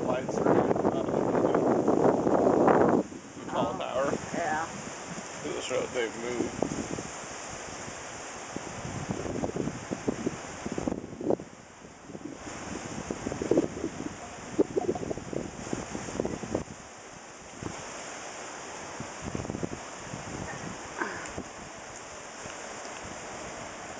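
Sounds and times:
strong wind gusting over microphone: 0:00.0 - 0:23.9.

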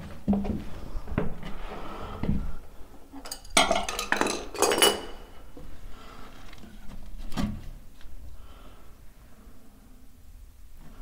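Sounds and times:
porcelain clattering and scraping: 0:03.2 - 0:05.3.

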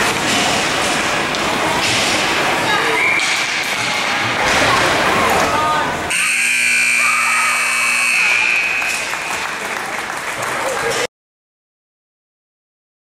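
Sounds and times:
rink noise and voices: 0:00.0 - 0:11.1
scoreboard buzzer: 0:06.1 - 0:09.4.

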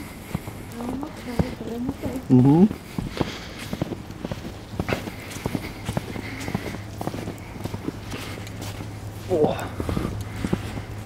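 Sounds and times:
boots tramping through snow: 0:00.0 - 0:11.0
low steady hum: 0:00.0 - 0:11.0.

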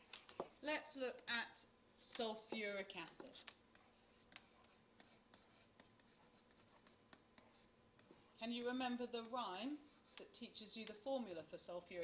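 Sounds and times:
low background hiss: 0:00.0 - 0:12.0
stylus scratching on a surface: 0:03.2 - 0:11.4.

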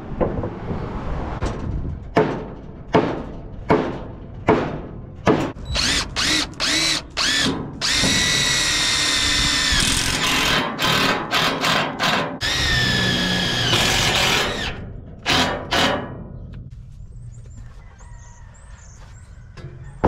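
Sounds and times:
impact driver whining: 0:05.6 - 0:15.9.

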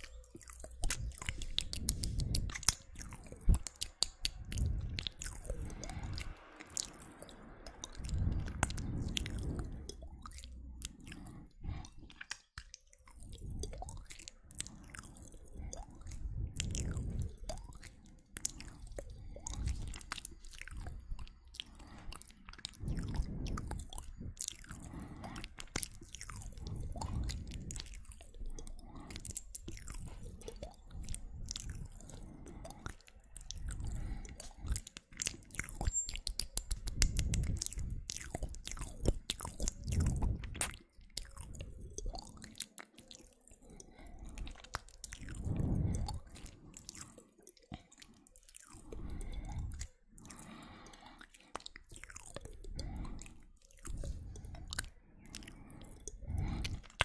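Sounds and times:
mouth clicks smacks and pops: 0:00.0 - 0:57.0.

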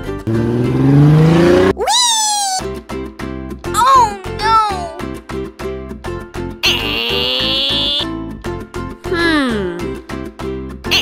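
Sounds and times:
car engine revving: 0:00.2 - 0:01.8.

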